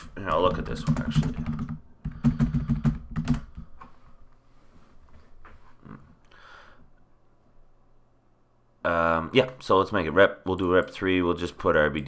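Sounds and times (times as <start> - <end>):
computer keyboard typing: 0.4 - 3.7.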